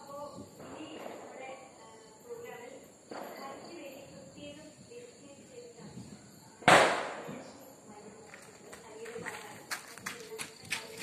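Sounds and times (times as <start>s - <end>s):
firecracker bang: 3.1s - 4.2s, 6.6s - 7.5s.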